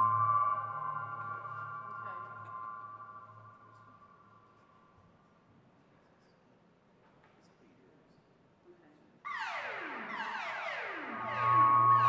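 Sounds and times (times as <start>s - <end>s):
synthesizer drone: 0.0s - 3.8s, 9.3s - 12.0s
low hum: 0.0s - 4.0s, 11.1s - 12.0s.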